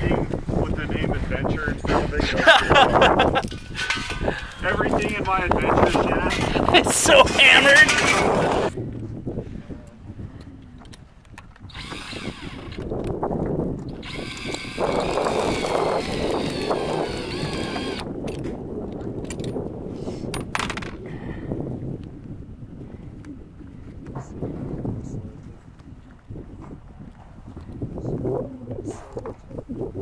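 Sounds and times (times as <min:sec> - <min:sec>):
cordless drill whining: 0:11.7 - 0:12.9, 0:14.0 - 0:18.1.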